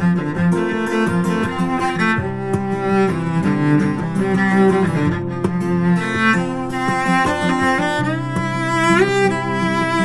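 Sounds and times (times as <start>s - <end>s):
bowed cello playing: 0.0s - 10.0s.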